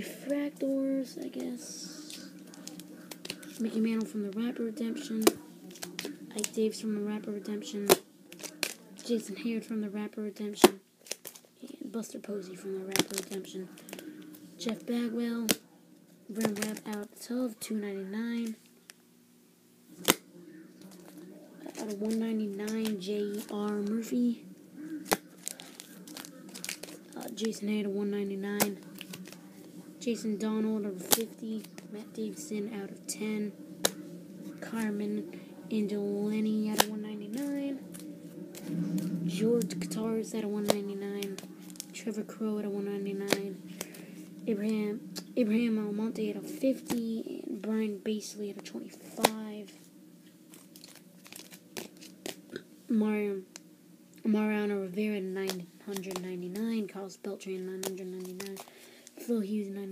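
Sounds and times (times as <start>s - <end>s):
cards crinkling and rustling: 1.2s - 9.4s, 10.6s - 15.6s, 16.3s - 17.4s, 20.0s - 47.2s, 48.4s - 49.8s, 50.5s - 52.6s, 53.5s - 59.4s.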